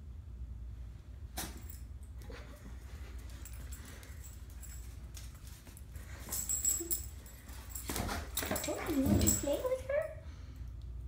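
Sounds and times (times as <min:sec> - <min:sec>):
dogs scuffling on tile floor: 0:01.4 - 0:10.0.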